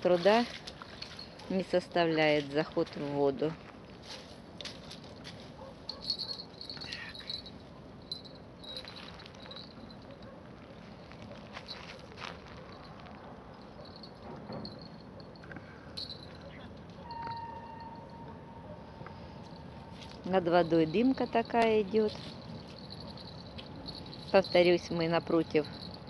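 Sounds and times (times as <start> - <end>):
whistle-like tone: 17.0 - 18.6.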